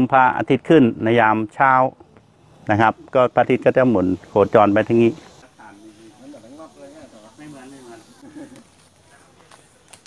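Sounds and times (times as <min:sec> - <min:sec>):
man speaking: 0:02.6 - 0:08.2
faint background voices: 0:05.1 - 0:10.0.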